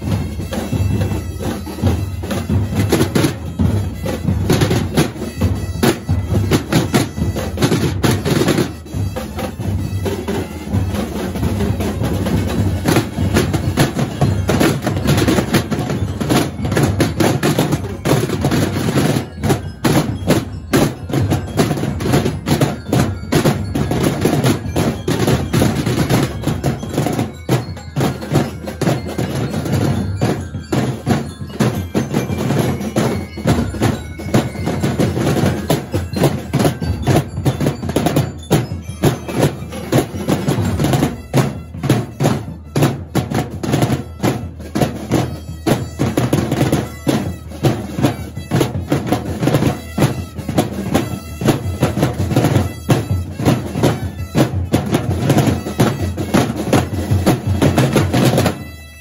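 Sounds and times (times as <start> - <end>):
percussion band drumming: 0.0 - 59.0.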